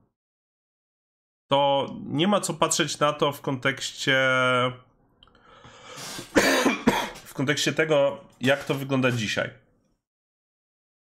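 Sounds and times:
man drawing breath: 0:05.3 - 0:06.4
man coughing loudly: 0:06.2 - 0:07.3.

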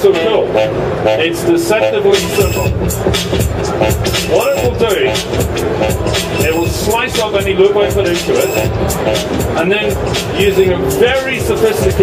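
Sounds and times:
man talking: 0:01.2 - 0:02.7, 0:04.3 - 0:05.2, 0:06.4 - 0:08.7, 0:09.6 - 0:12.0
looped electronic music: 0:02.2 - 0:12.0.

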